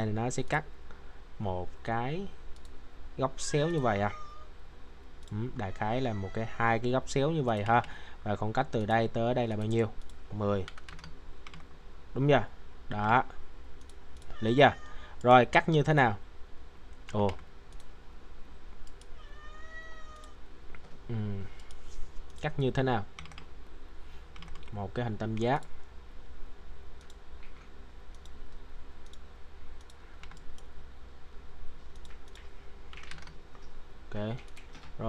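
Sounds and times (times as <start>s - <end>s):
soft clicks: 2.5s - 2.8s, 9.5s - 11.7s, 13.8s - 14.4s, 16.9s - 18.0s, 18.8s - 19.2s, 20.1s - 21.0s, 21.6s - 22.5s, 27.0s - 30.7s, 31.8s - 35.0s.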